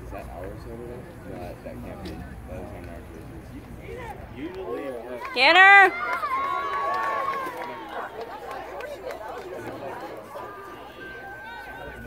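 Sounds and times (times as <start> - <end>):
spectators shouting: 5.2 - 8.8, 9.6 - 12.0.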